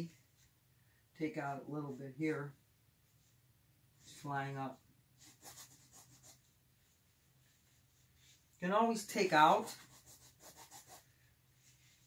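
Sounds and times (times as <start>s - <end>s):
rag rubbing canvas: 5.2s - 6.5s, 9.6s - 12.0s.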